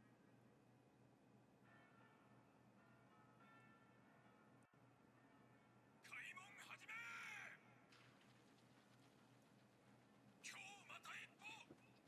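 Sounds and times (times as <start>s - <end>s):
person shouting a command: 6.2s - 7.6s.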